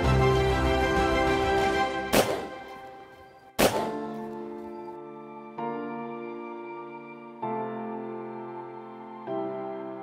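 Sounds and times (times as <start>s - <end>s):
background music: 0.0s - 10.0s
shotgun shots: 2.1s - 2.7s, 3.6s - 4.2s.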